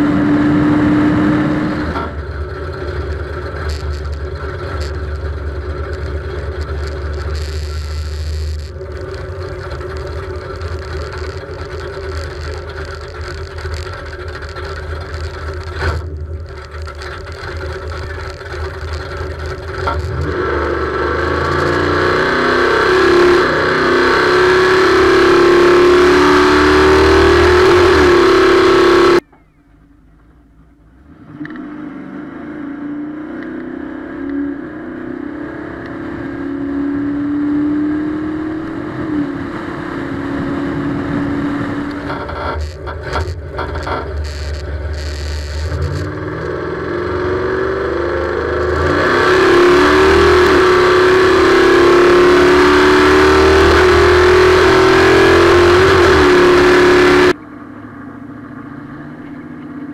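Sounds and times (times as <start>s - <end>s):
car engine running and idling: 0.0s - 31.8s, 37.0s - 59.9s.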